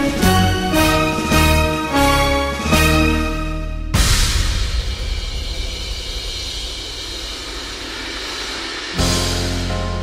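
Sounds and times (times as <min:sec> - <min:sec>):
full orchestra playing: 0:00.0 - 0:03.9
cymbal crash: 0:03.8 - 0:10.0.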